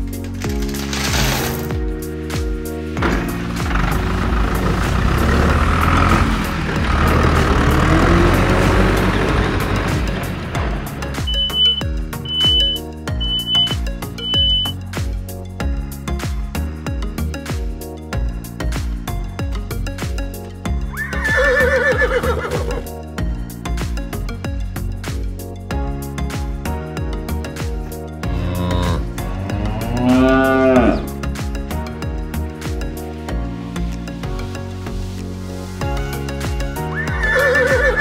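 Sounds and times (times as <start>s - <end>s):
background music with steady beat: 0.0s - 38.0s
horse whinnying: 20.9s - 22.8s, 29.7s - 31.1s, 36.9s - 38.0s.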